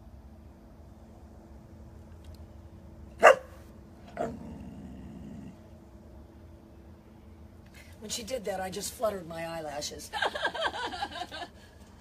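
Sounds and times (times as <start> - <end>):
dog barking: 3.2 - 3.6.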